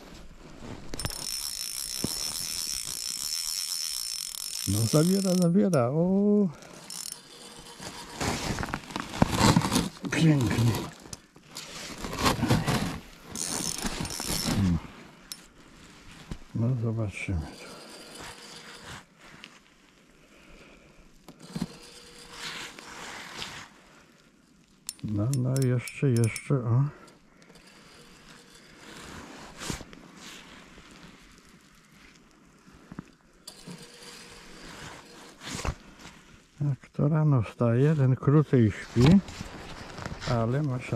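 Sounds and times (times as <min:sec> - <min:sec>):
reel ratchet clicks: 0:00.9 - 0:05.9, 0:06.8 - 0:08.2, 0:13.4 - 0:14.6, 0:24.9 - 0:26.5
fishing reel clicking and whirring: 0:00.9 - 0:08.2, 0:13.3 - 0:14.7, 0:17.6 - 0:18.8, 0:21.4 - 0:22.8, 0:27.5 - 0:29.0, 0:33.5 - 0:35.4.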